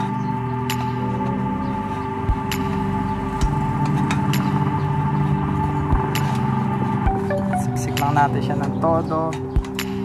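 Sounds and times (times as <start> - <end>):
background music with held tones: 0.0 - 10.0.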